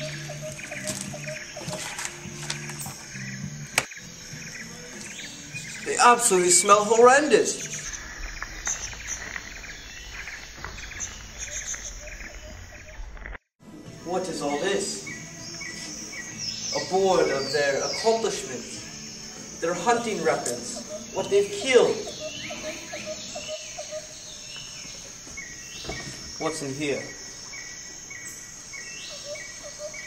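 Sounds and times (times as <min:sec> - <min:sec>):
birds chirping: 0:00.0 - 0:13.3, 0:14.0 - 0:30.0
insects chirping: 0:00.0 - 0:30.0.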